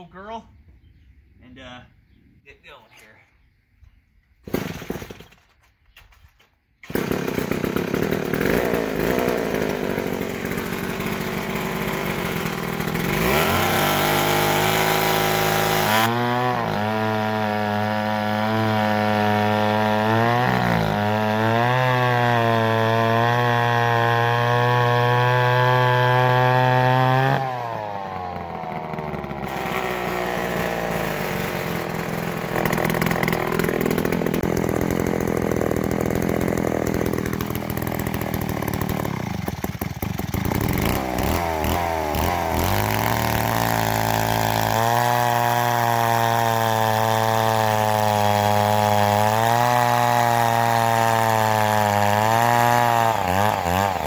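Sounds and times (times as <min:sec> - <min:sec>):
chainsaw cutting through log: 0:04.5 - 0:05.3, 0:06.8 - 0:54.0.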